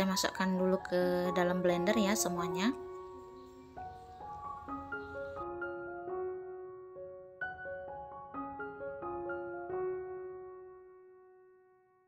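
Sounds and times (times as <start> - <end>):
piano chord: 0.8 - 12.0.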